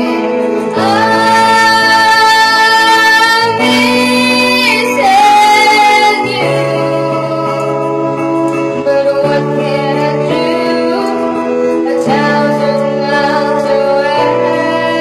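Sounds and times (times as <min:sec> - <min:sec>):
instrumental backing music: 0:00.0 - 0:15.0
woman singing into microphone: 0:00.0 - 0:15.0.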